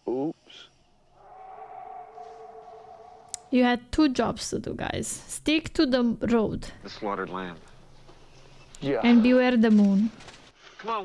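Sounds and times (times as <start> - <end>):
eerie sustained two-pitch tone: 1.2 - 3.9.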